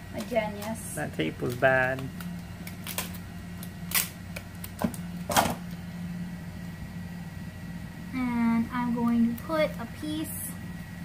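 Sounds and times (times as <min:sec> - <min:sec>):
steady low hum: 0:00.0 - 0:11.0
tape dispenser clicks: 0:01.4 - 0:05.5.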